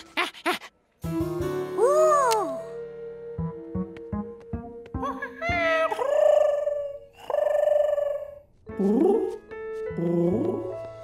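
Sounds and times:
gentle plucked music: 1.1 - 6.0, 7.8 - 11.0.

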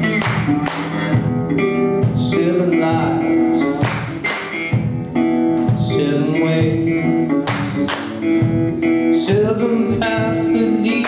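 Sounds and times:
electric bass: 0.0 - 11.0
slide resonator guitar: 0.0 - 11.0
man singing: 2.0 - 4.2, 5.6 - 7.9, 8.8 - 11.0.

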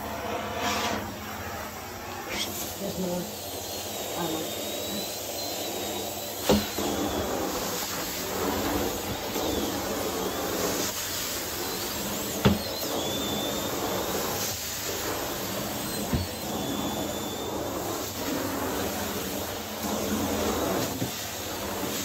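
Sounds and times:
carpet extraction wand suction hiss: 0.4 - 22.0.

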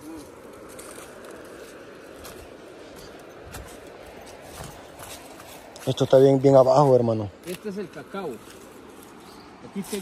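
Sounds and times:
footsteps on leafy dirt path: 0.0 - 10.0
steady outdoor hiss: 0.0 - 10.0.

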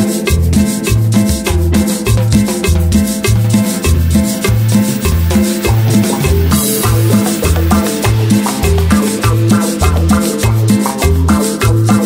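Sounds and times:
bass line: 0.0 - 12.0
keyboard chords: 0.0 - 12.0
scraped guiro rhythm: 0.0 - 12.0.

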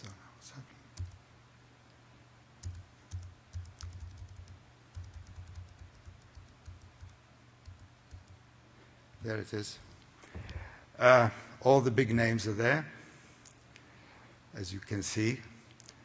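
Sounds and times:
computer keys clicking: 1.0 - 1.2, 2.6 - 8.4.

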